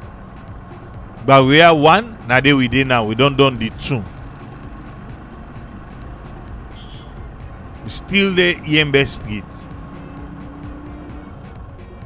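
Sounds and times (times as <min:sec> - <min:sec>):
background music: 0:00.0 - 0:12.0
vehicle engine and road noise: 0:00.0 - 0:12.0.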